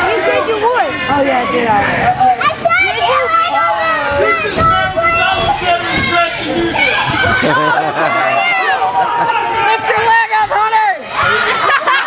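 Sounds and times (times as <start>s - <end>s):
crowd yelling and chattering: 0.0s - 12.0s.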